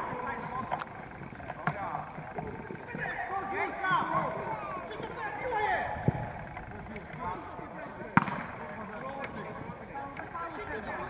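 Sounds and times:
distant shouts: 0.0s - 11.0s
football kick thud: 8.1s - 8.5s.

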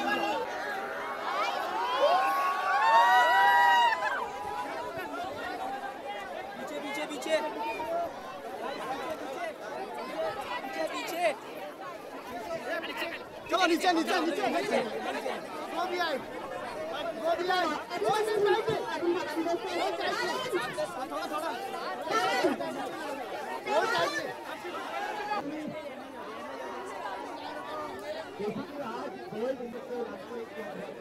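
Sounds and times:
crowd chatter: 0.0s - 31.0s.

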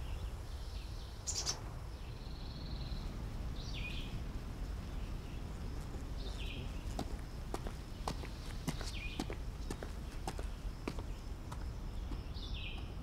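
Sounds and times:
bird calling: 1.2s - 1.6s.

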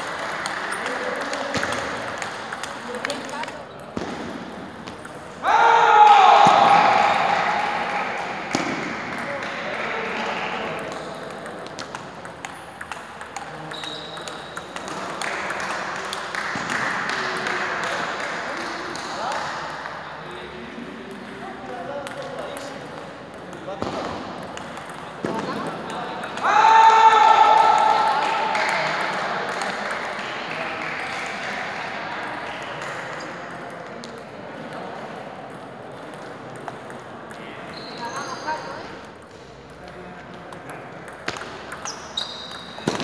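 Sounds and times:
loud high shout: 5.4s - 7.9s, 26.4s - 28.5s
table tennis ball clicking: 10.9s - 16.3s, 40.5s - 42.8s.

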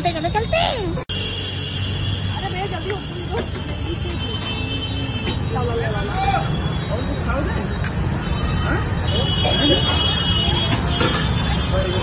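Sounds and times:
road traffic rumble: 0.0s - 12.0s
people talking: 2.3s - 4.8s.

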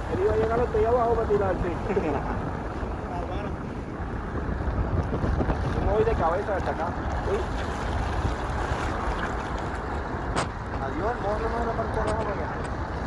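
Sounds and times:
passing traffic: 0.0s - 5.5s
wind on microphone: 0.0s - 13.0s.

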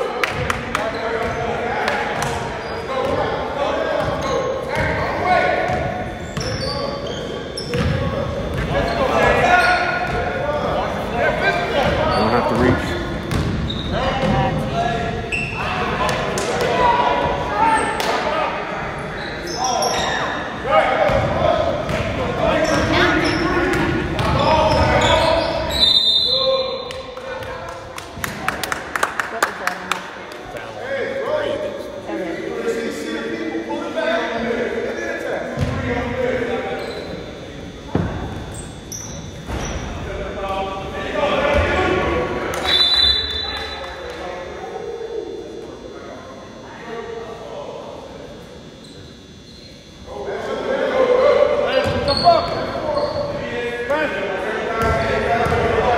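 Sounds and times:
spectators chatter: 0.0s - 55.9s
voices echoing in a hall: 0.0s - 55.9s
basketball striking in gym: 12.6s - 14.4s.

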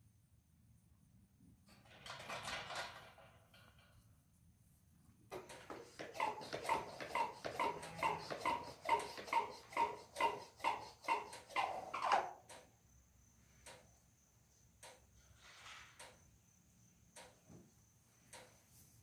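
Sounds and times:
trigger sprayer squeaky spritz: 5.4s - 12.5s.

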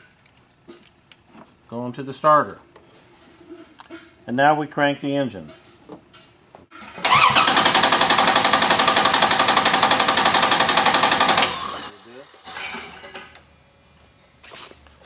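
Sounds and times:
engine cranking without starting: 6.7s - 12.8s.

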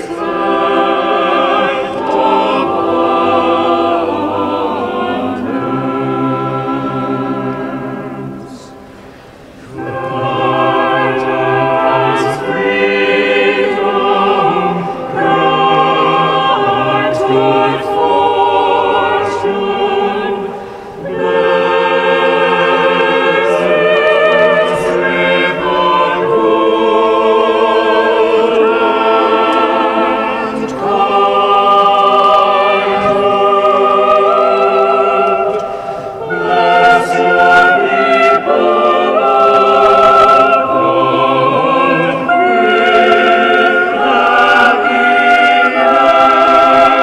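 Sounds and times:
choir singing a hymn: 0.0s - 47.0s
singers breathing: 8.6s - 9.7s, 20.4s - 21.1s, 35.5s - 36.2s.

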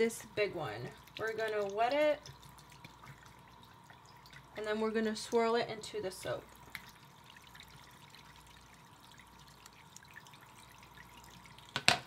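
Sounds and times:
tap running into sink: 11.7s - 12.0s.

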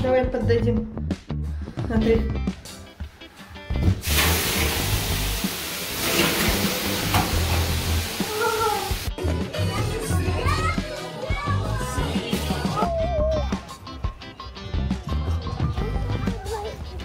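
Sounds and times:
background music with low beat: 0.0s - 8.2s
water hissing on hot stones: 4.0s - 9.1s.

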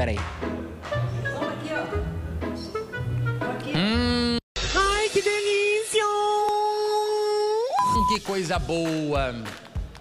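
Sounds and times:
high-pitched test-tone beep: 7.8s - 8.2s.

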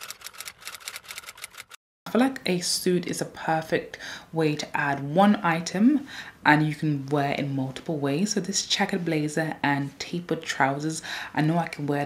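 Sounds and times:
typewriter keys clicking: 0.0s - 1.8s.

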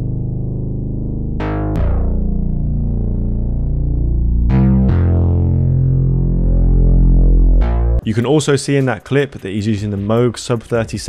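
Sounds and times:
distorted synth bass note: 0.0s - 8.0s.

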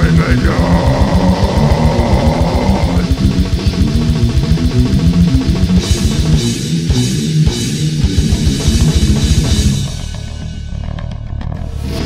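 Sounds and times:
deep growled vocal: 0.0s - 3.4s
very fast drumming: 0.0s - 10.2s
heavily distorted guitars: 0.0s - 12.0s.

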